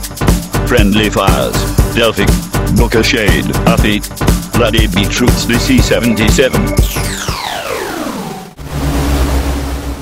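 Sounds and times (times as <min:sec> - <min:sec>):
falling synth sweep: 0:06.8 - 0:10.0.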